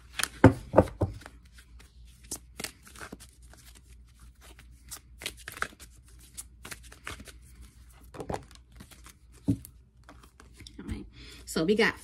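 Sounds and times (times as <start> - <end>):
cards being shuffled: 0.0 - 10.8.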